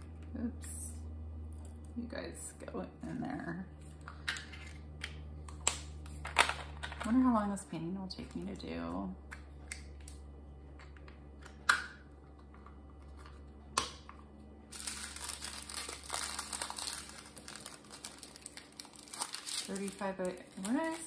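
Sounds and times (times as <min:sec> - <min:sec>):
plastic bags crinkling: 0:14.7 - 0:21.0.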